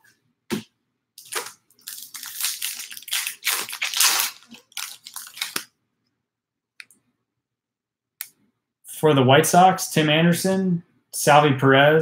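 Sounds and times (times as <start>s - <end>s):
foil wrapper tearing and crinkling: 1.2s - 5.7s.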